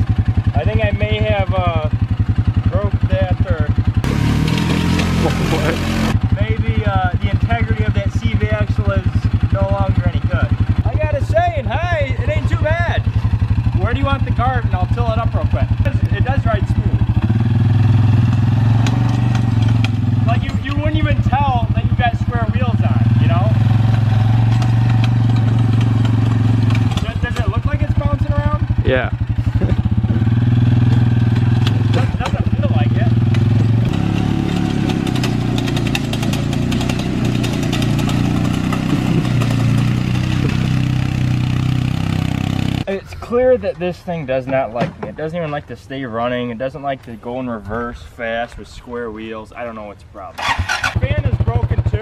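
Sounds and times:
quad bike engine under load: 0.0 - 43.4, 50.3 - 52.0.

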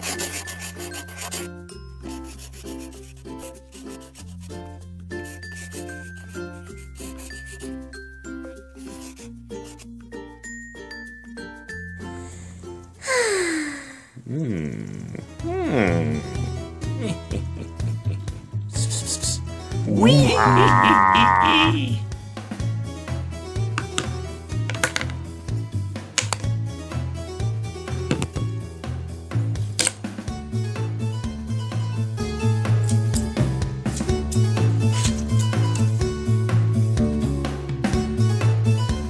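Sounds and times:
sustained bass notes: 19.8 - 22.0
scissors scraping out of plastic cup: 34.9 - 35.9.

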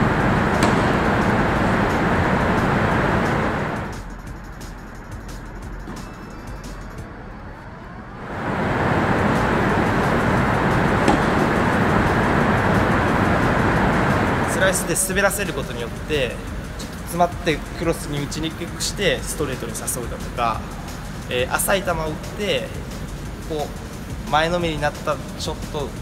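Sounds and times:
dense background music: 0.0 - 7.5, 8.2 - 26.0.

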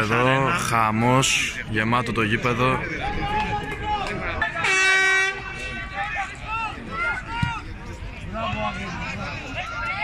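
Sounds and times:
spectators shouting: 3.0 - 10.0.

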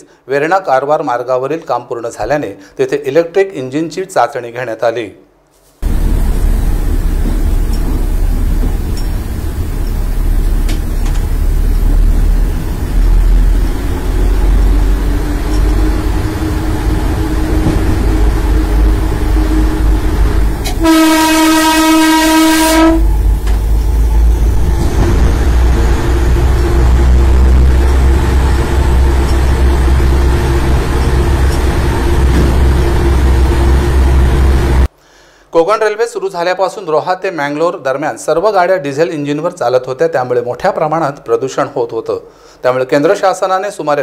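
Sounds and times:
train rumbling in tunnel: 5.8 - 34.9
train horn blast: 13.0 - 34.9.

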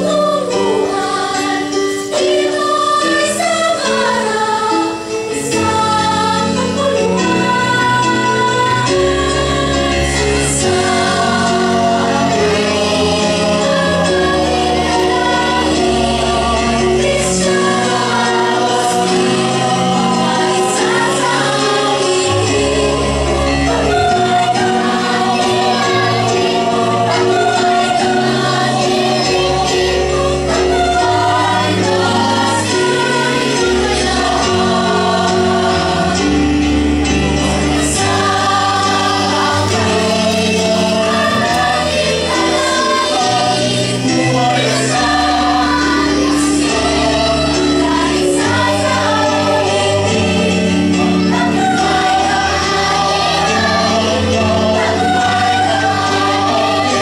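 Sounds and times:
instrumental accompaniment: 0.0 - 57.0
mixed choir singing: 0.0 - 57.0.

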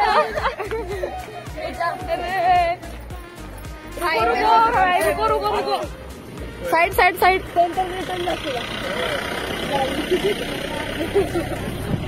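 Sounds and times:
music with a steady beat: 0.0 - 8.2
voices chattering: 0.0 - 12.0.

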